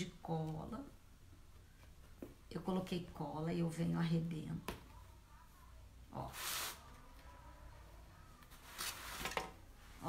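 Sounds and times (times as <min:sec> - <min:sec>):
short hiss: 0:06.3 - 0:06.8.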